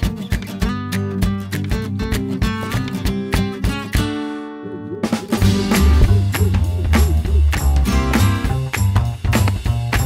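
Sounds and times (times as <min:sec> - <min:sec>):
strummed acoustic guitar chords: 0:00.0 - 0:09.6.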